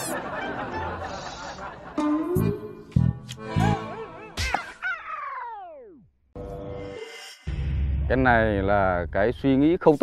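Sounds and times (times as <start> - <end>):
background music tone: 0.1 - 4.6.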